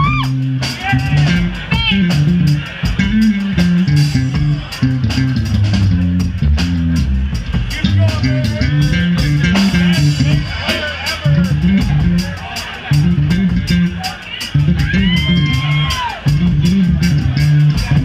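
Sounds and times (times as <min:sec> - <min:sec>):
drum kit beat: 0:00.0 - 0:18.0
electric bass line: 0:00.0 - 0:18.0.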